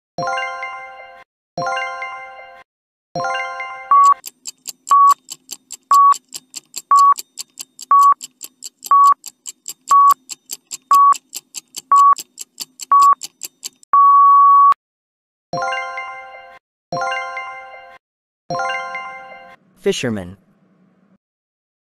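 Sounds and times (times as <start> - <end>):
timer ticking: 3.9 - 13.9
timer beeps: 3.9 - 14.8.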